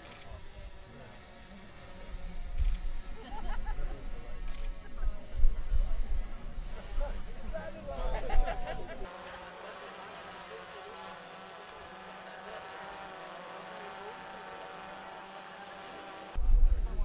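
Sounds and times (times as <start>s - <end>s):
murmur of distant crowd voices: 0.0s - 17.0s
close talking: 3.1s - 16.3s.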